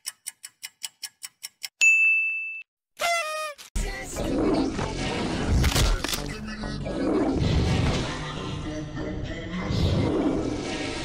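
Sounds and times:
music: 3.8s - 11.0s.

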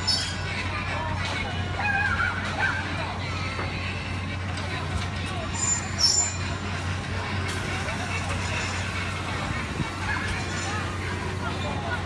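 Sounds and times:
traffic: 0.0s - 12.0s.

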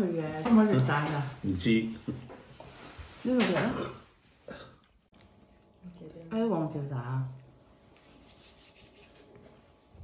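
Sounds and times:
hands rubbing together: 7.9s - 9.4s.

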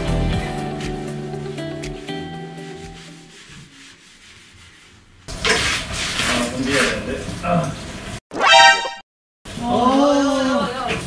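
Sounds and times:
background music: 0.0s - 3.4s
brush scrubbing hard surface: 2.4s - 7.0s.

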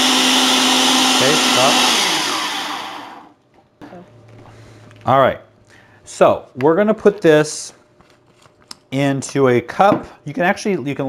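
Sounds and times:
blender running and spinning down: 0.0s - 3.4s.

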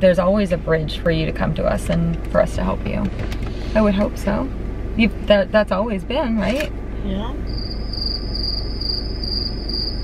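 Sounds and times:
low steady hum: 0.0s - 10.0s
cricket chirping: 7.5s - 10.0s.

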